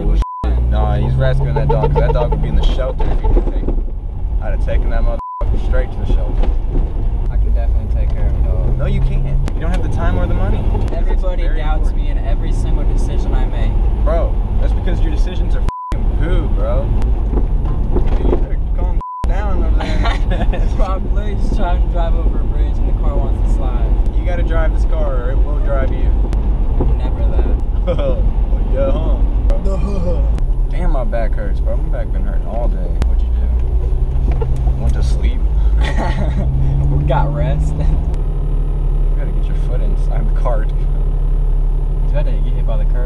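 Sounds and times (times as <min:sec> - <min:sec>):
car road and engine rumble: 0:00.0 - 0:43.0
laughter: 0:19.8 - 0:20.9, 0:27.9 - 0:28.2, 0:35.8 - 0:36.7.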